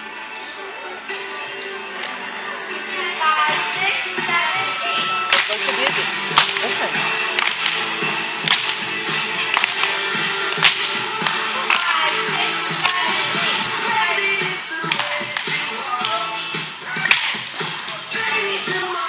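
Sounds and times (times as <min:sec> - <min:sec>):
dance music: 0:00.0 - 0:19.0.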